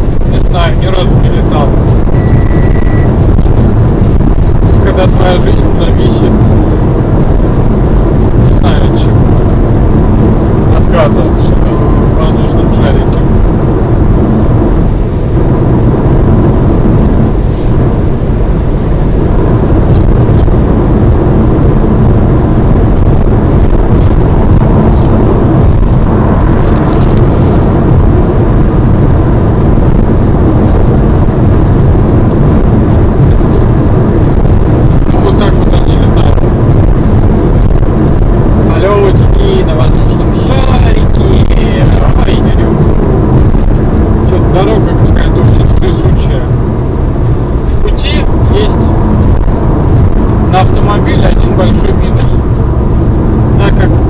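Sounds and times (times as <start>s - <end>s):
low tyre rumble: 0.0s - 54.0s
wind noise inside car: 0.0s - 54.0s.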